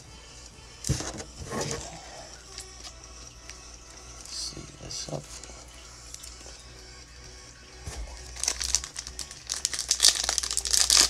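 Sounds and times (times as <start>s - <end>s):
faint background music: 0.0s - 11.0s
foil pack crinkling and tearing: 7.9s - 11.0s.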